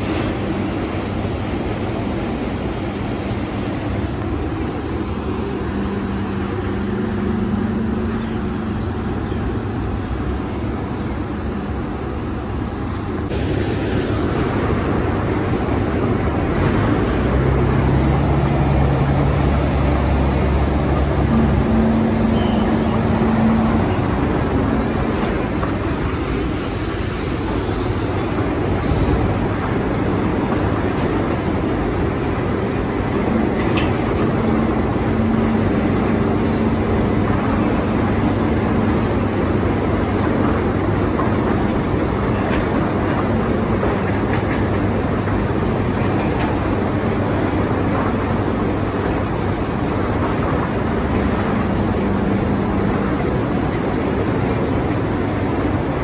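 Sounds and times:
tractor diesel engine running: 13.3s - 26.6s, 28.6s - 44.0s.

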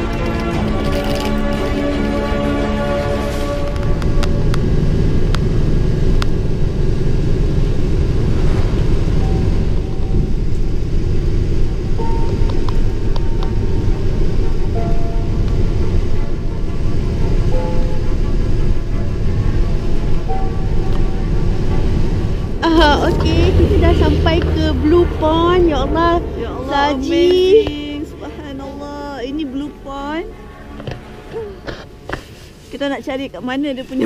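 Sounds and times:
bus rumbling: 0.0s - 34.0s
faint music: 0.0s - 34.0s.

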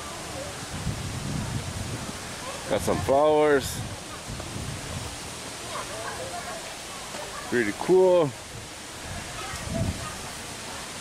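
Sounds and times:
outdoor background noise: 0.0s - 11.0s
faint voices of people: 2.2s - 11.0s.

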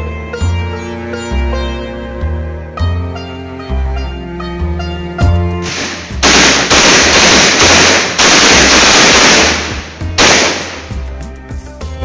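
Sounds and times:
background music: 0.0s - 12.0s
firecrackers crackling: 5.6s - 11.0s.

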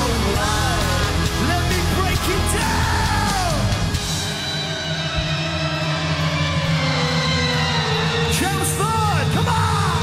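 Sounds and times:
steady bass: 0.0s - 4.4s.

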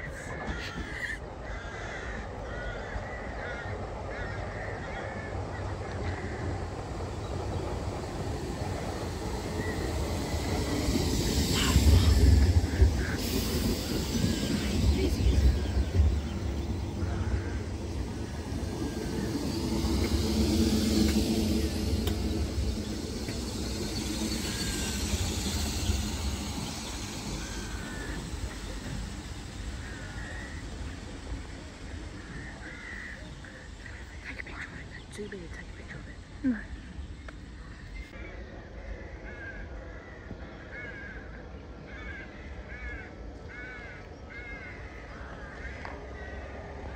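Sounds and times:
train wheels rumbling on rail: 0.0s - 38.3s
train motor hum: 3.8s - 38.1s.

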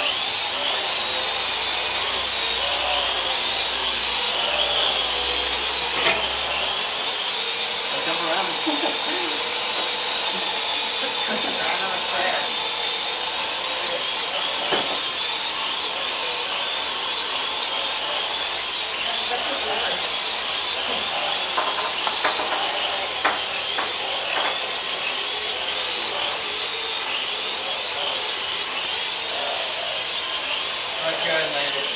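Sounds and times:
quadcopter drone hovering whine: 0.0s - 31.9s
sharp knocks: 21.5s - 24.6s.

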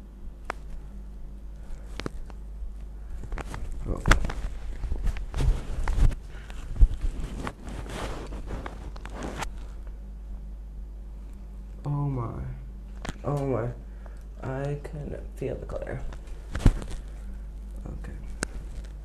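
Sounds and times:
towel rubbing wet hair: 3.5s - 9.7s.

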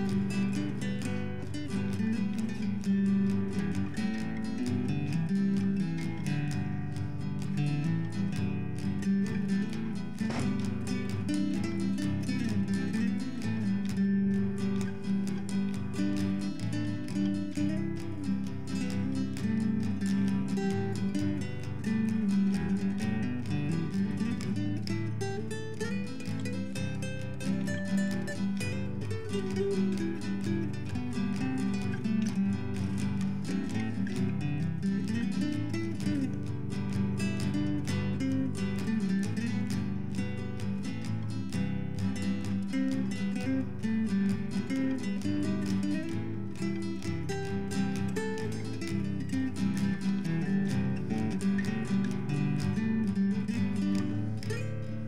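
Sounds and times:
acoustic guitar music: 0.0s - 55.0s.

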